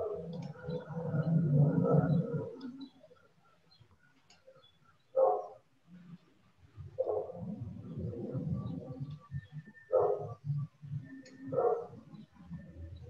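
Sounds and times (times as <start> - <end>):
dog barking: 5.1 - 5.6, 7.0 - 7.4, 9.9 - 10.4, 11.5 - 12.0.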